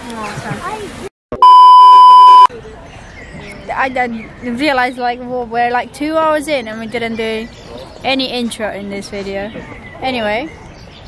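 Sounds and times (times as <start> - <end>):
censor bleep: 1.4 - 2.5.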